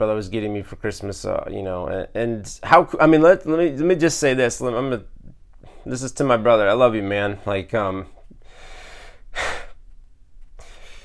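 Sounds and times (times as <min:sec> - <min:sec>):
man's sharp breath: 0:08.4 - 0:09.8, 0:10.6 - 0:11.0.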